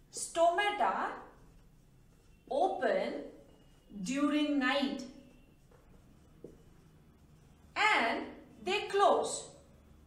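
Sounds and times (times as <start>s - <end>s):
marker scratching on whiteboard: 0.2s - 7.6s.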